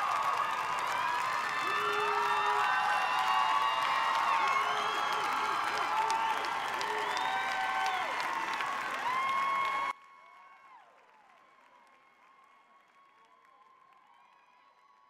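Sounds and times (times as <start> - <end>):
audience applauding and cheering: 0.0 - 15.0.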